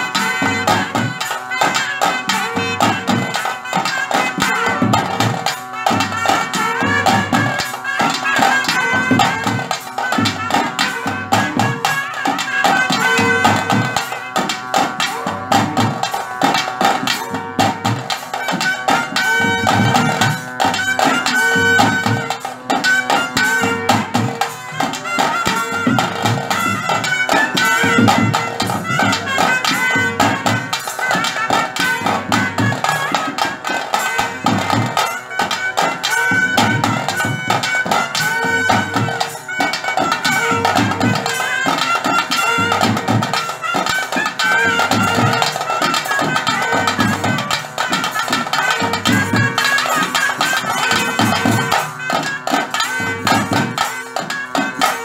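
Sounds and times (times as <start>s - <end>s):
rhythmic drumming: 0.0s - 55.0s
shrill reed wind instrument: 0.0s - 55.0s.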